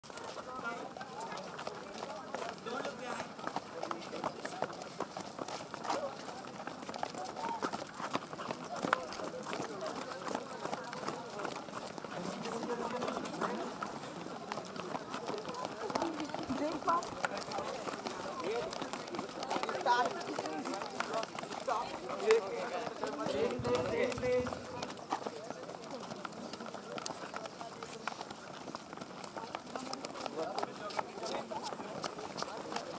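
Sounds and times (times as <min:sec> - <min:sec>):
children's footsteps on asphalt: 0:00.0 - 0:32.9
children chattering: 0:05.7 - 0:32.9.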